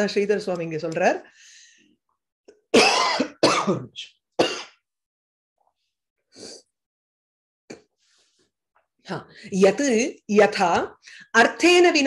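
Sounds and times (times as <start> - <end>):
woman coughing: 2.7 - 4.8.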